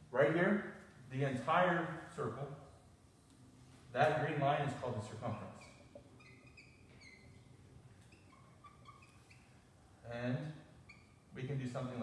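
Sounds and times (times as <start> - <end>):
marker squeaking on whiteboard: 5.2 - 9.8, 10.7 - 11.4.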